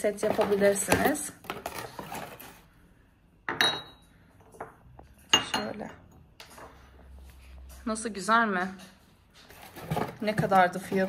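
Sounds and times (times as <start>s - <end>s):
porcelain cup and saucer clinking: 3.5s - 6.0s.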